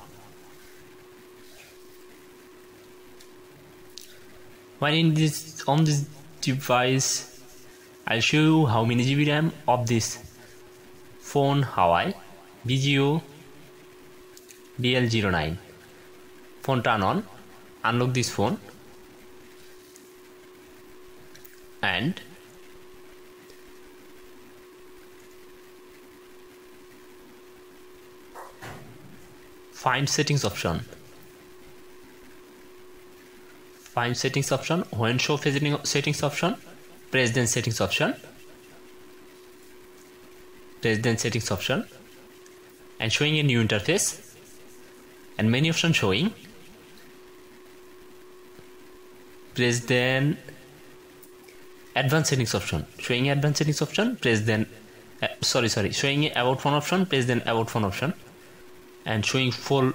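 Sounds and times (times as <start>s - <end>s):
low steady hiss: 0.0s - 59.9s
thin steady hum: 0.0s - 59.9s.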